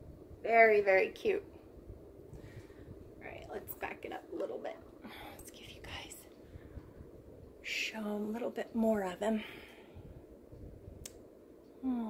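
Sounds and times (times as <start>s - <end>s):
woman whispering: 5.0s - 6.3s.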